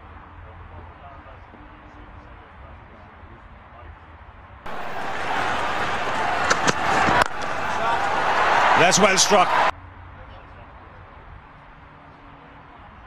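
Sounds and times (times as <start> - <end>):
bat striking ball: 4.7 - 8.6
crowd noise: 4.7 - 9.7
commentator talking: 8.6 - 9.7.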